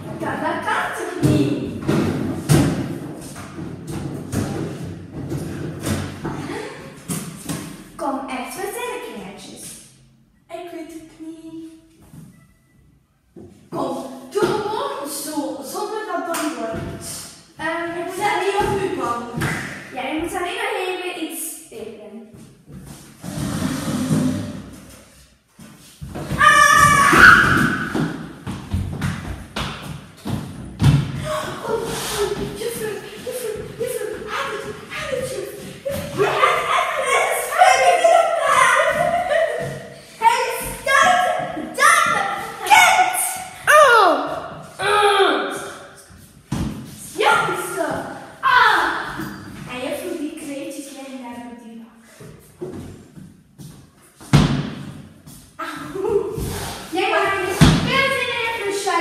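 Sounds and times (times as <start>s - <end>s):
girl's voice: 0.0s - 1.8s, 10.5s - 12.0s, 13.7s - 22.4s, 31.2s - 46.0s, 47.1s - 52.0s, 55.6s - 59.0s.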